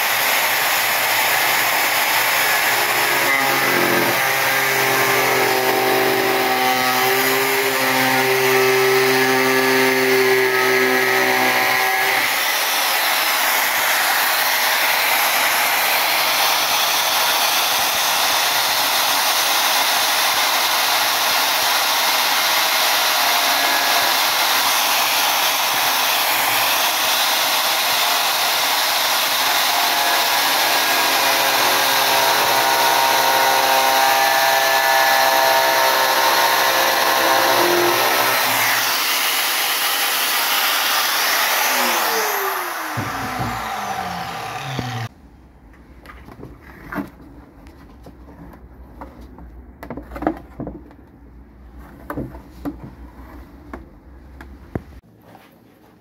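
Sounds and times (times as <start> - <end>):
angle grinder cutting resin: 0.0 - 45.1.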